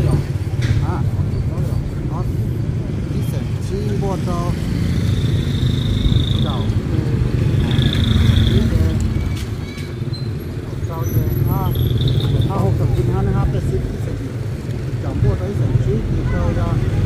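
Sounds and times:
motorcycles and cars passing: 0.0 - 17.0
voices: 0.0 - 17.0.

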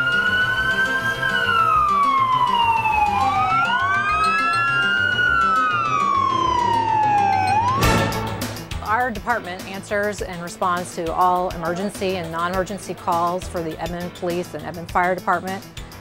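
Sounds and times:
fire engine siren wailing: 0.0 - 8.6
background music with steady beat: 0.0 - 16.0.

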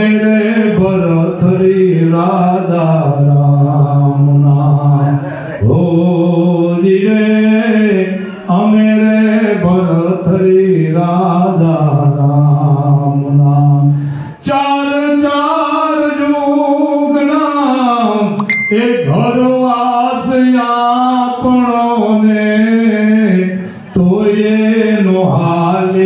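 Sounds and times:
man chanting into a microphone: 0.0 - 26.0.

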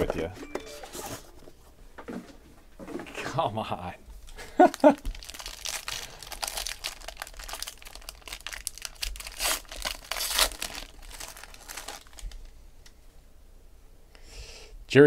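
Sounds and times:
foil pack crackling: 4.6 - 12.5
foil tearing: 4.7 - 12.3.

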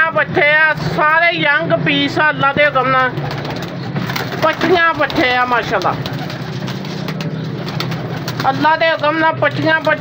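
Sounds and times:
pigeons cooing: 2.6 - 9.1
wings flapping: 2.8 - 10.0.

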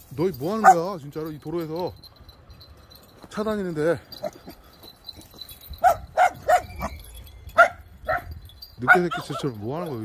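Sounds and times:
dogs barking: 0.6 - 1.0, 5.8 - 7.0, 7.6 - 9.6.

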